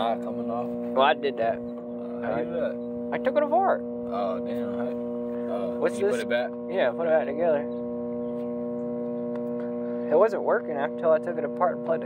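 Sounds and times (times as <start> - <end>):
microwave oven humming: 0.0 - 12.0.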